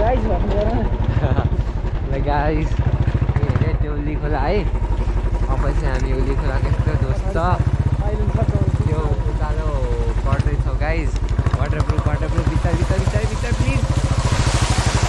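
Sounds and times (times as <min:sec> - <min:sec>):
motorcycle engine running: 0:00.0 - 0:15.0.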